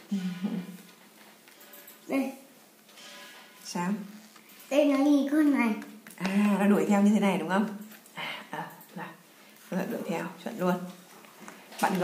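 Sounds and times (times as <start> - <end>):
person saying a word: 0.1 - 0.8.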